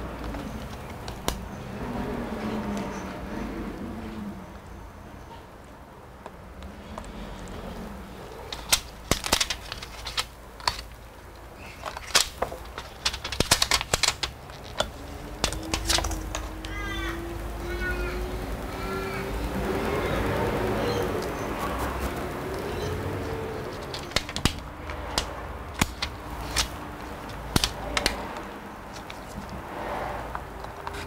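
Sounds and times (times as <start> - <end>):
clicks and taps on laptop parts: 11.8 - 16.8, 23.8 - 29.6.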